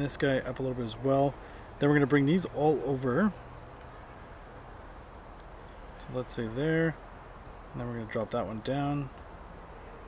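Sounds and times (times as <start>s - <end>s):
low background rumble and hiss: 0.0s - 10.0s.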